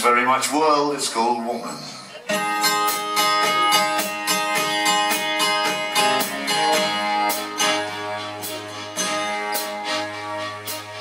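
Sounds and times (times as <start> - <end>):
band playing pop song: 2.3 - 11.0
guitar strumming chords: 2.3 - 11.0.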